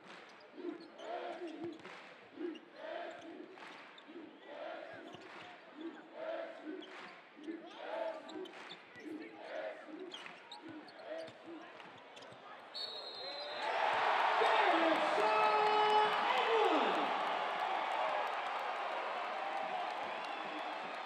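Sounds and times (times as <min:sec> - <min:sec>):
crowd voices in arena: 0:00.0 - 0:21.0
referee's whistle: 0:12.7 - 0:15.5
crowd cheering: 0:13.0 - 0:21.0.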